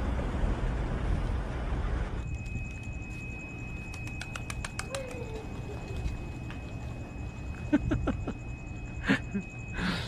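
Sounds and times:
pigeon wings clapping: 3.8s - 6.8s
pigeon cooing: 4.2s - 6.4s.

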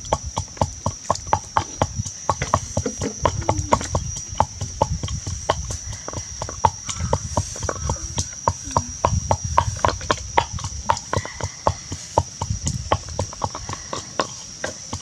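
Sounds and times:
pestle pounding in mortar: 0.0s - 15.0s.

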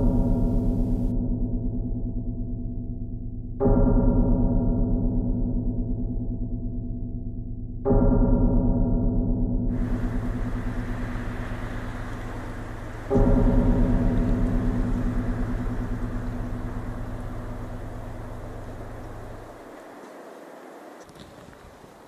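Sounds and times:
deep gong-like low note: 9.8s - 19.5s.

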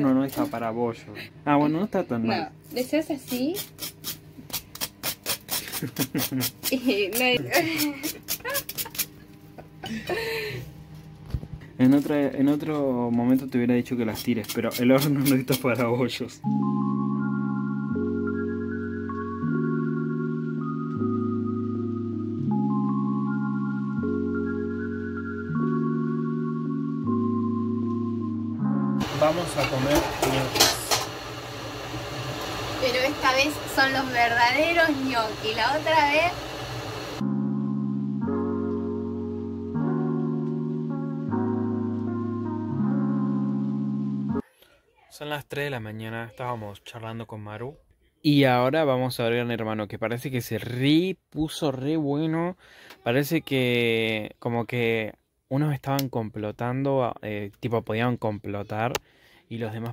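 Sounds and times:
knife scraping burnt toast: 3.5s - 6.8s
person speaking: 6.6s - 8.1s
low indoor hum: 29.0s - 37.2s.

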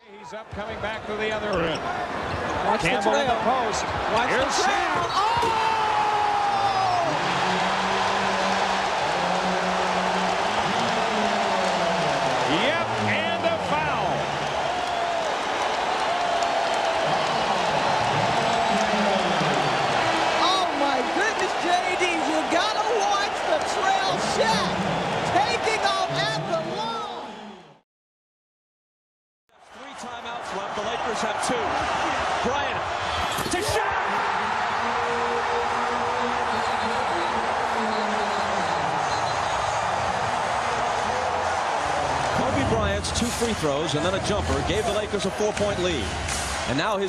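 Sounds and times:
arena crowd cheering: 0.0s - 27.8s, 29.6s - 47.0s.

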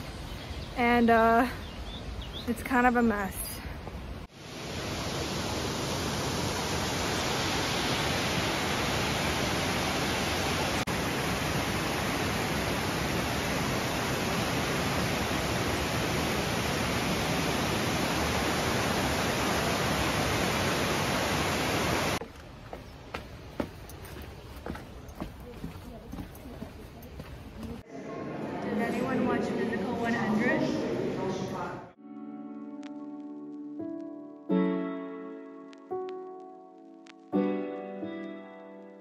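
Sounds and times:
waterfall rushing: 4.4s - 22.2s.

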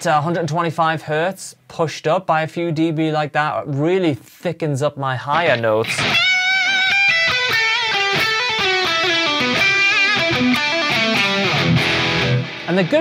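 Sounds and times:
distorted electric guitar lead: 5.8s - 13.0s.

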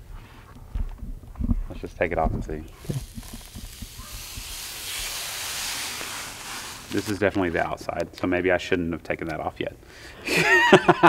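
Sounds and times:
plastic film peeling hiss: 2.6s - 8.3s.

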